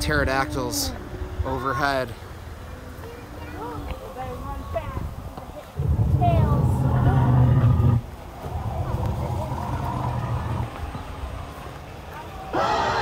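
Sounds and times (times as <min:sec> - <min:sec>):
distorted dinosaur growl from loudspeaker: 0:05.8 - 0:10.8.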